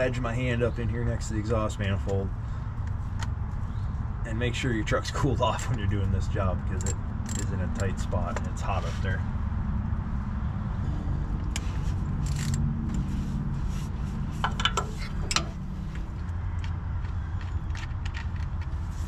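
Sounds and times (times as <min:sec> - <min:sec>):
steady low hum: 0:00.0 - 0:17.1
ratchet clinking and scraping: 0:06.7 - 0:08.4, 0:11.5 - 0:13.3, 0:14.2 - 0:16.3.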